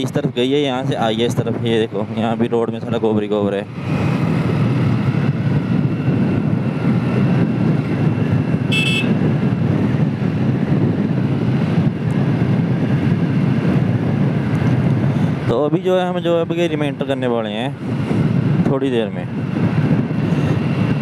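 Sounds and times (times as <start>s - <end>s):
wind and road noise: 0.0s - 21.0s
motorcycle engine running: 3.7s - 15.4s
motorcycle horn beep: 8.7s - 9.2s.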